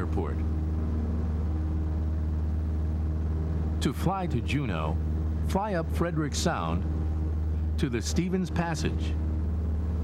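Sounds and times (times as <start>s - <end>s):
aircraft engine droning in cabin: 0.0s - 10.0s.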